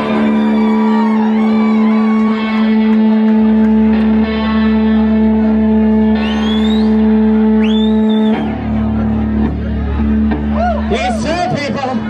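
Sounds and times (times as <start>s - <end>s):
band chord on guitar and bass: 0.0s - 12.0s
rising whistles: 6.2s - 8.6s.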